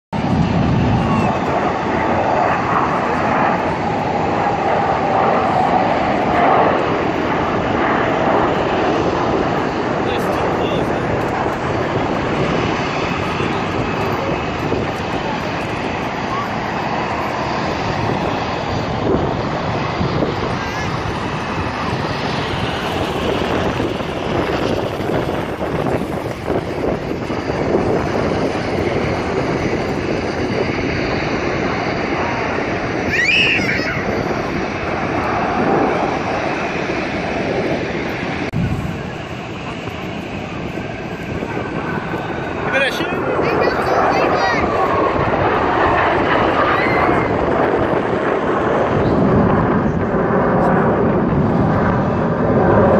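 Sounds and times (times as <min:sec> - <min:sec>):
jet engines flying past: 0:00.1 - 0:52.9
crowd chatter: 0:10.0 - 0:30.7, 0:38.6 - 0:51.1.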